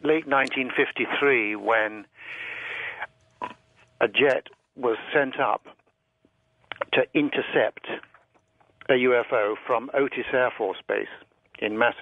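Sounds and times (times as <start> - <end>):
man breathing over phone line: 2.1 - 3.1.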